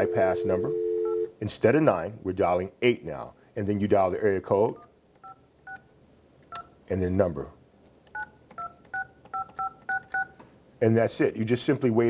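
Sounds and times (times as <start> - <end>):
phone keypad dialing beeps: 8.2 - 10.4.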